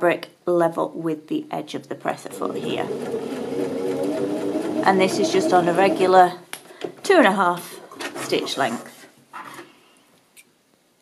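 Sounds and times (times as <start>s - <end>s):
electric sewing machine running: 2.2s - 6.3s.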